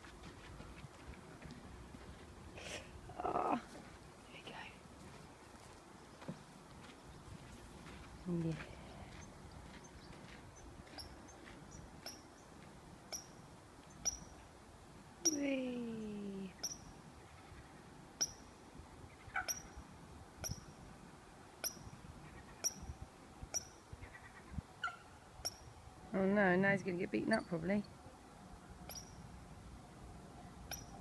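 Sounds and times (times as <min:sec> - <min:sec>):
person's drawn-out vocal sound: 0:02.6 - 0:03.7
bird calling: 0:15.2 - 0:18.5, 0:19.1 - 0:19.8, 0:30.7 - 0:31.0.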